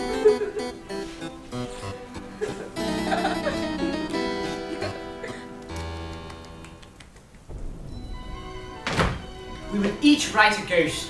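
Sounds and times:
music: 0:00.0 - 0:11.0
thunder rumble and crack: 0:07.4 - 0:10.4.

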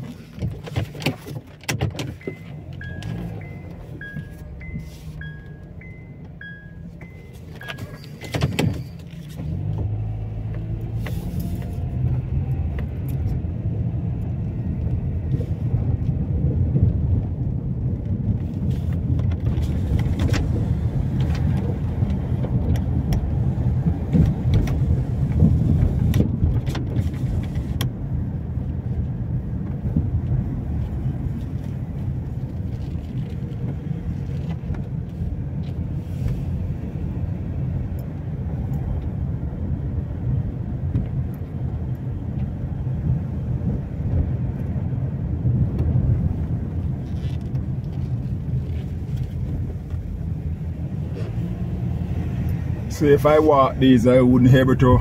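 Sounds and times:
car engine and road hum: 0:00.0 - 0:55.0.

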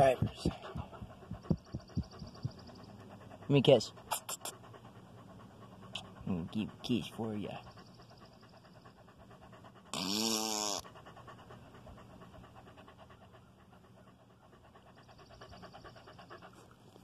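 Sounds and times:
dog panting: 0:00.0 - 0:17.0.

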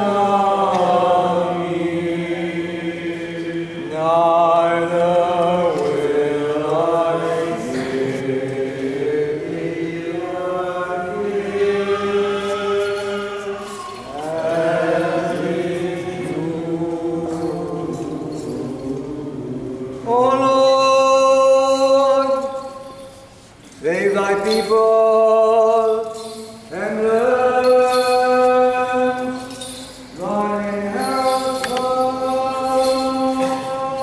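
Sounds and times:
voices chanting a hymn: 0:00.0 - 0:23.2, 0:23.8 - 0:34.0.

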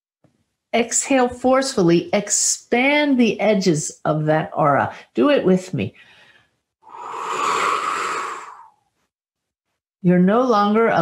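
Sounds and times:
woman exhaling forcefully: 0:06.8 - 0:08.8.

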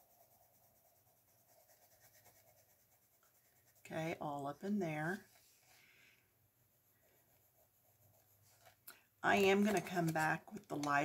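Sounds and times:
coloured pencil scratching paper: 0:00.0 - 0:05.5, 0:06.6 - 0:08.8.

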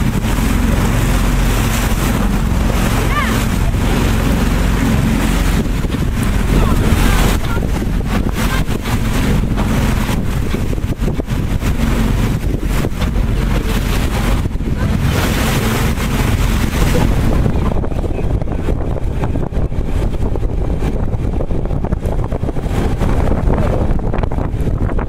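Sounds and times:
low engine drone: 0:00.0 - 0:24.7
water rushing along hull: 0:00.0 - 0:25.0
wind buffeting microphone: 0:00.0 - 0:25.0.

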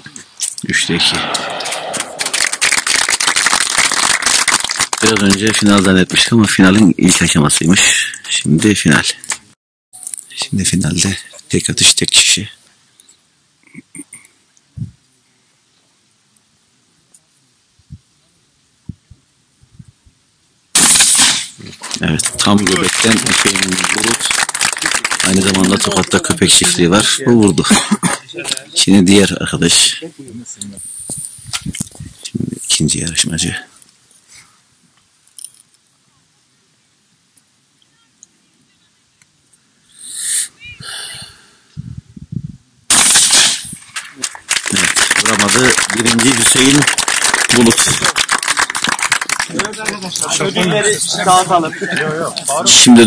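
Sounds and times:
loud shotgun shot: 0:01.1 - 0:02.5, 0:20.8 - 0:21.6, 0:42.9 - 0:44.1.

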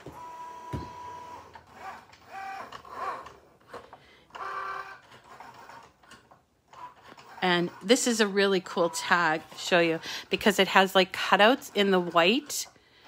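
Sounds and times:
cutting machine motors whining: 0:00.0 - 0:12.7.

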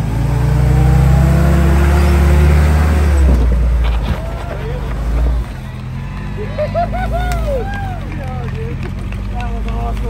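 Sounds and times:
engine running steadily: 0:00.0 - 0:10.0
people talking: 0:03.8 - 0:10.0.

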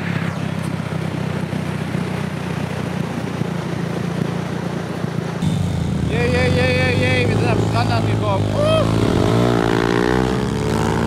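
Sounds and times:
wind: 0:00.0 - 0:11.0
dirt bike engines idling: 0:00.1 - 0:10.2
person crying out: 0:08.4 - 0:09.1.

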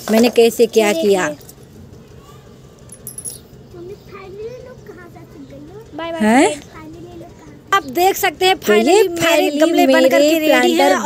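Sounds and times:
light jingle: 0:02.8 - 0:03.9.

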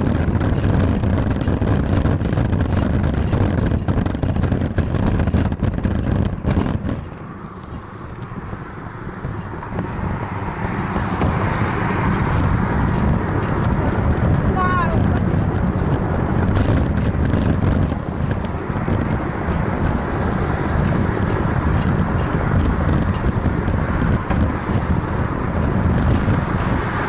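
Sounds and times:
road traffic: 0:00.0 - 0:27.0
tyre rumble: 0:00.0 - 0:27.0
wind noise on microphone: 0:00.0 - 0:27.0.

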